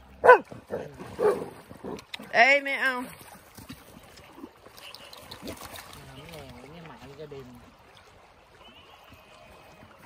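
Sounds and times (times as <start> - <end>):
dog barking: 0.2 - 1.5.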